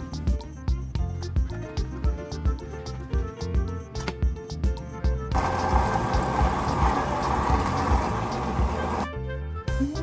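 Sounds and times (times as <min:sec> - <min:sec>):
electric blender grinding: 0:05.3 - 0:09.1.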